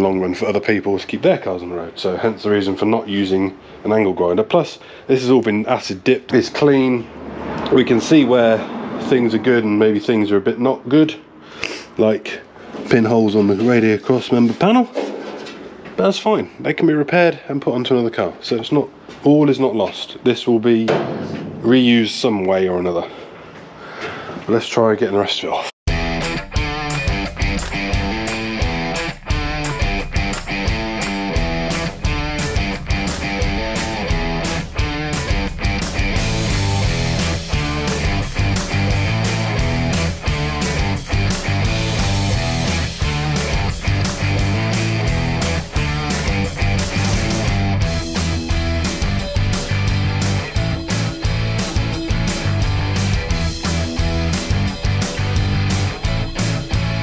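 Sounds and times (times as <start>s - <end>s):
rock music with electric guitar: 25.9s - 57.0s.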